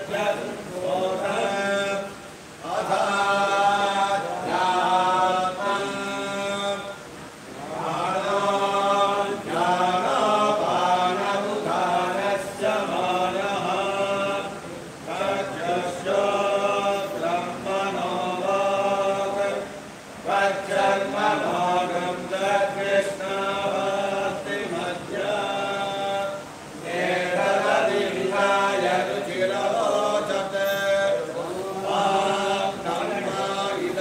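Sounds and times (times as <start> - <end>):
men chanting in unison: 0.0 - 34.0.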